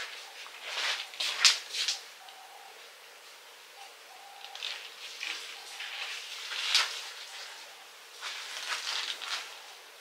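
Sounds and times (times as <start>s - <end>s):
soft rustle: 0.0s - 2.0s, 4.5s - 9.8s
bird cooing: 0.0s - 3.0s, 3.6s - 10.0s.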